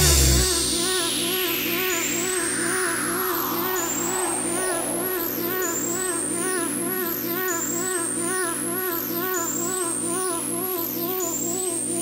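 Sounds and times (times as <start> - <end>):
falling noise sweep: 0.0 - 7.1
high rising synth sweep: 0.0 - 10.0.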